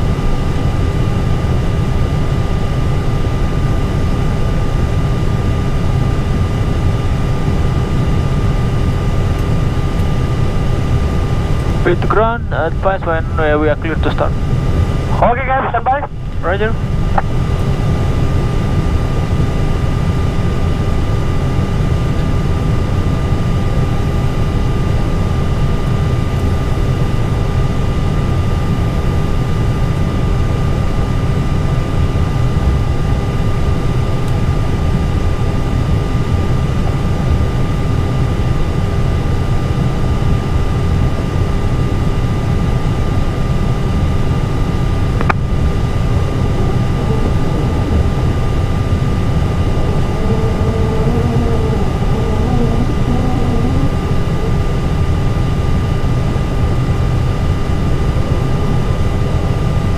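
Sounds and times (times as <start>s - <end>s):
cockpit low rumble: 0.0s - 59.9s
high ventilation whines: 0.0s - 59.9s.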